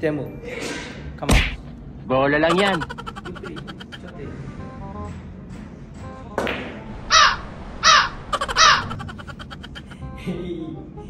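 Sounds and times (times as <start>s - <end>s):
crow cawing: 7.1s - 10.0s.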